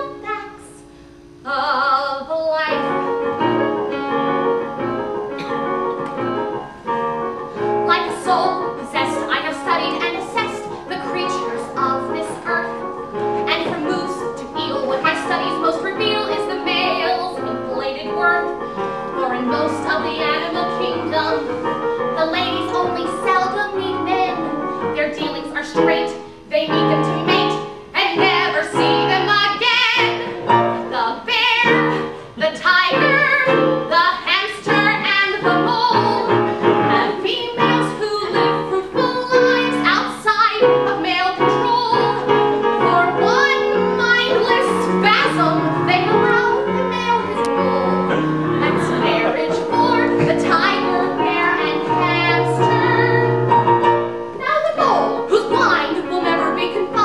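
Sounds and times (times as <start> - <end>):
woman singing: 0.0 - 3.4, 7.8 - 57.0
piano accompaniment: 0.0 - 57.0.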